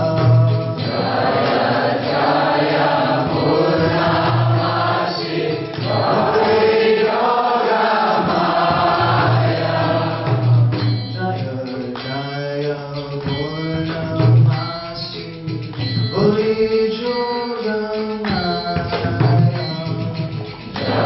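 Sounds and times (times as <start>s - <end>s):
man singing into a microphone: 0.0s - 0.9s, 11.1s - 20.6s
voices singing along: 0.7s - 11.6s, 20.8s - 21.0s.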